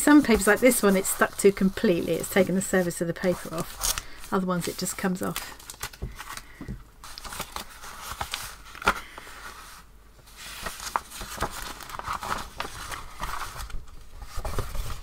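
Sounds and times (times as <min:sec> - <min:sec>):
paper rustling and crinkling: 0:00.0 - 0:15.0
paper sheet unfolding: 0:07.0 - 0:15.0.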